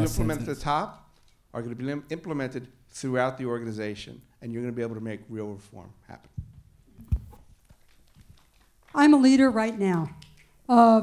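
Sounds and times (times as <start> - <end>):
microphone handling clicks and rustles: 6.2 - 10.6
microphone thump: 6.3 - 7.5.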